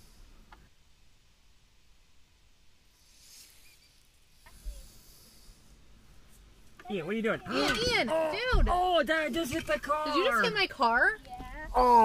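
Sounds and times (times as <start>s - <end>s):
faint high hiss: 0.0s - 12.0s.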